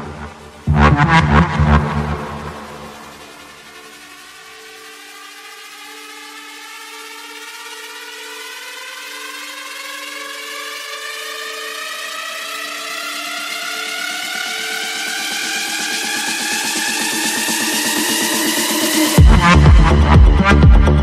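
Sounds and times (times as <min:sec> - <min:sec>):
synth riser climbing in pitch: 0:00.0 - 0:03.9
held synth chord: 0:00.0 - 0:21.0.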